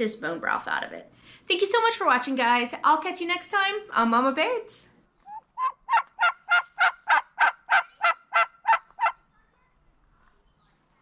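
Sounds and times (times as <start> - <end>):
turkey calling: 5.1 - 9.3.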